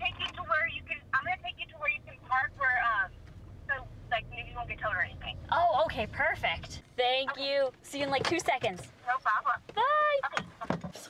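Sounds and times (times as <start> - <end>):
car cabin hum: 0.0 - 10.9.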